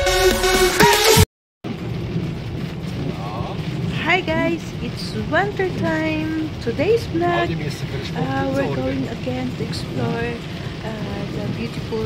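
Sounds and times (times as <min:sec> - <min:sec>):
car driving on wet road: 0:01.7 - 0:12.0
rain on windshield: 0:01.7 - 0:12.0.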